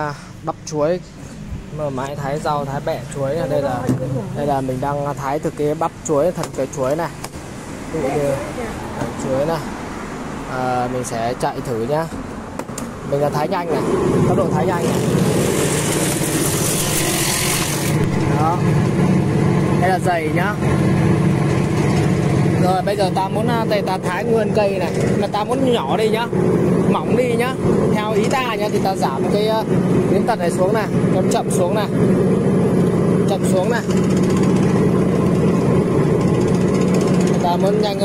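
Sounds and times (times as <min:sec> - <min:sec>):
rotating blades chattering: 0:13.5 - 0:38.0
vegetable slicer motor humming: 0:13.8 - 0:19.8.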